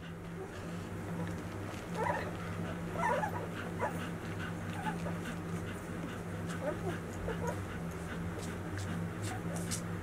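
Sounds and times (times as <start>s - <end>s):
steady low hum: 0.0s - 10.0s
puppies whimpering: 1.9s - 7.7s.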